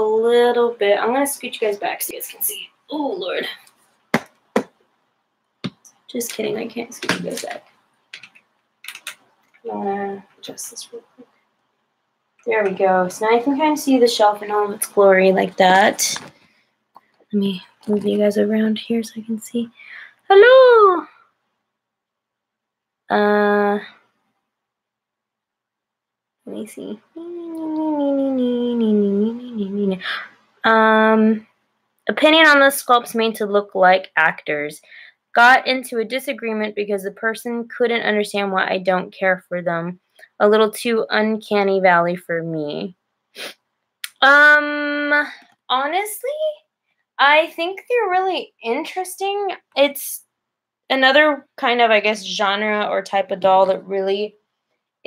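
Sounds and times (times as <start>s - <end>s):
woman humming: 27.2s - 30.0s.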